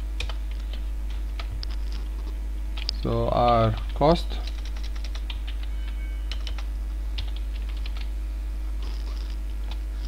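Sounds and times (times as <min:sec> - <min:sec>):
low electrical hum: 0:00.0 - 0:10.0
typing on computer keyboard: 0:03.7 - 0:05.7, 0:06.3 - 0:08.1.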